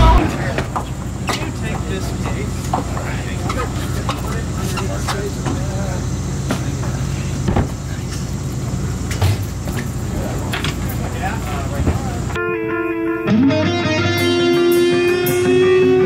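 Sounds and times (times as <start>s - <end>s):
loud thump: 0.0s - 0.8s
low rumble: 0.0s - 0.8s
voices talking: 0.0s - 12.4s.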